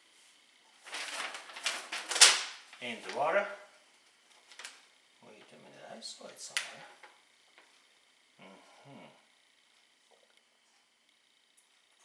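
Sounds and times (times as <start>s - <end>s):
paper leaflet rustling: 0.8s - 3.3s.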